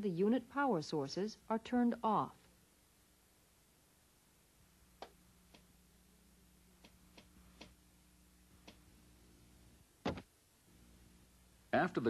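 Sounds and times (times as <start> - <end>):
faint low hum: 0.0 - 12.0
faint clicks: 8.6 - 8.8.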